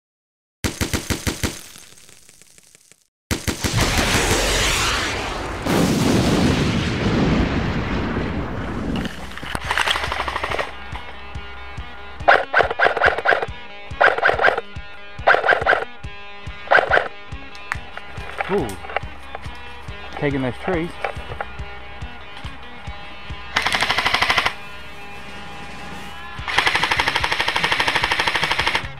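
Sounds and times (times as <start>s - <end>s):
airsoft guns firing bursts: 0.6s - 2.1s, 3.3s - 4.2s, 9.5s - 10.8s, 12.2s - 14.6s, 16.7s - 17.1s, 23.6s - 24.6s, 26.4s - 28.9s
background music: 9.0s - 28.9s.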